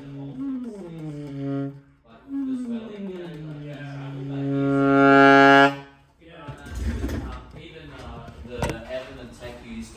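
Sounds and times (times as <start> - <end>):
saxophone long low note: 0.0 - 6.0.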